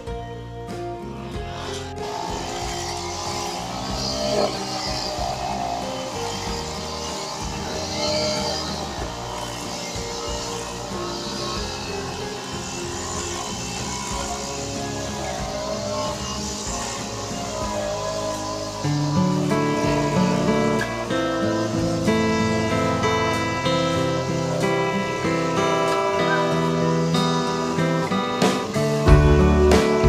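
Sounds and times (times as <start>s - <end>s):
background music: 0.0s - 30.0s
brush cutter engine cutting grass: 1.0s - 30.0s.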